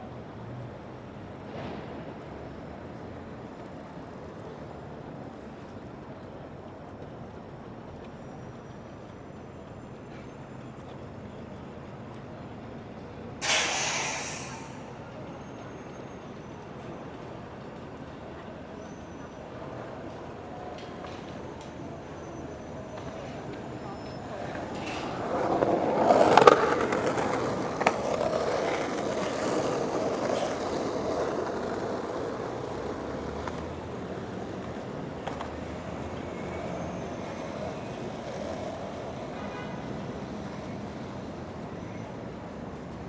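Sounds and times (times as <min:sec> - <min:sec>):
city street traffic: 0:00.0 - 0:43.0
loud rolling vehicle: 0:00.0 - 0:43.0
passersby talking: 0:14.4 - 0:36.3.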